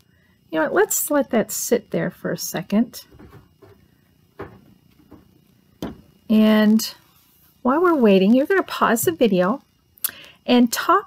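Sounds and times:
plastic bottle knocking on table: 3.1 - 3.8, 4.4 - 6.1
faint handling noise: 3.1 - 6.2.

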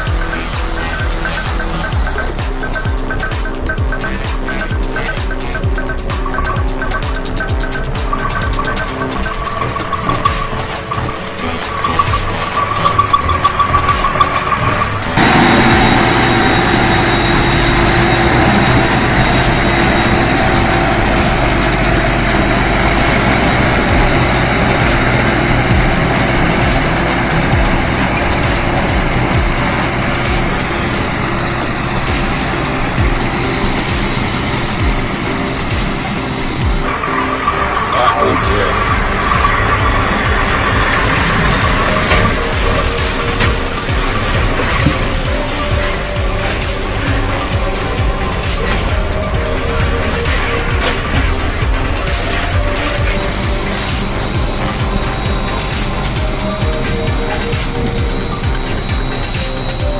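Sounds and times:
truck diesel engines under load: 0.0 - 59.9.

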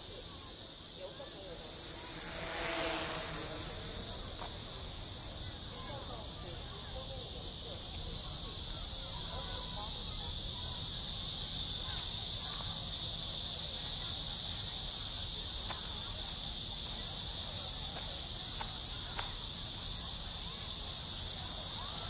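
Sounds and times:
faint distant voices: 0.0 - 22.0
insects chirring: 0.0 - 22.0.

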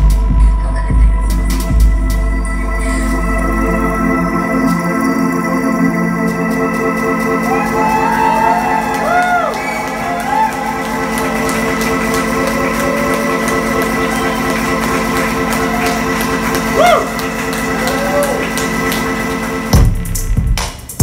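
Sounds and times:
sustained synthesizer chord: 0.6 - 20.5.

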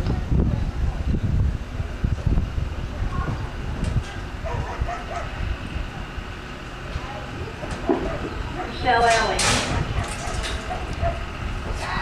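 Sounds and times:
faint voices: 0.0 - 12.0
low outdoor rumble: 0.0 - 12.0.

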